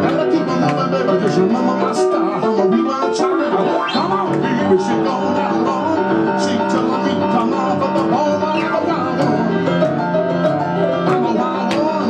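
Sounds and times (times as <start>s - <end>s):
piano glissando: 0.0s - 12.0s
rock and roll piano with band: 0.0s - 12.0s.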